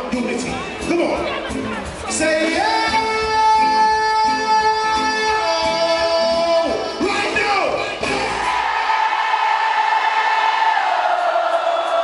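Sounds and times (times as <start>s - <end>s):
reggae band playing: 0.0s - 9.0s
man singing a long high note: 2.5s - 7.0s.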